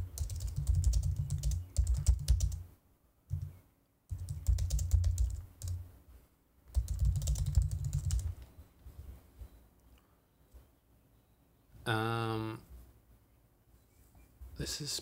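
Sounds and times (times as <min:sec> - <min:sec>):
typing on computer keyboard: 0:00.0 - 0:02.6, 0:03.3 - 0:05.8, 0:06.7 - 0:08.3.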